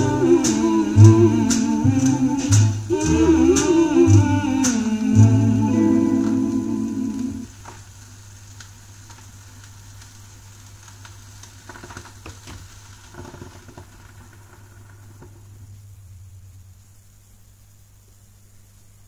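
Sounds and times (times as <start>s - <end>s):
song ending: 0.0s - 7.5s
low steady hum: 0.0s - 8.4s, 15.0s - 19.0s
vinyl crackle and clicks: 0.0s - 16.9s
faint hiss: 0.0s - 19.0s.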